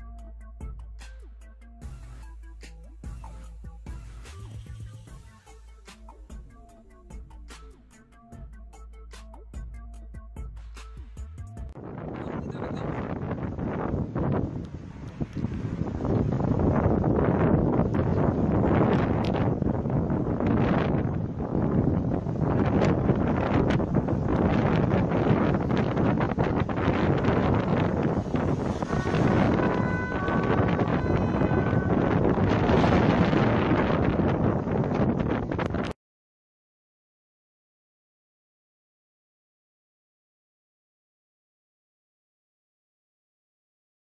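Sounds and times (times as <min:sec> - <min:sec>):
road noise: 0:11.8 - 0:35.9
wind buffeting microphone: 0:11.8 - 0:36.0.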